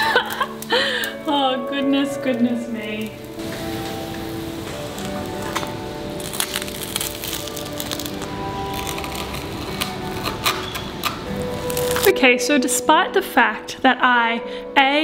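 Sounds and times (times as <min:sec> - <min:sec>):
sharp crackles: 0:00.0 - 0:12.2
background music: 0:00.0 - 0:15.0
knife crunching through toasted bread: 0:05.2 - 0:12.1.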